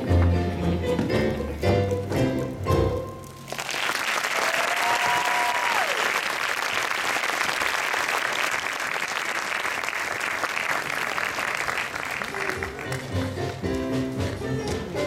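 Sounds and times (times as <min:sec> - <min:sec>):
audience applauding: 0:03.5 - 0:13.3.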